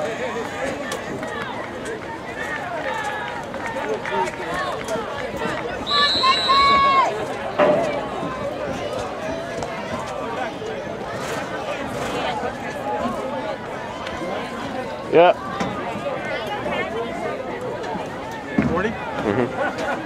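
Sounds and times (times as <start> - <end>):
spectators chatting: 0.0 - 20.0
shrill referee's whistle: 5.8 - 7.0.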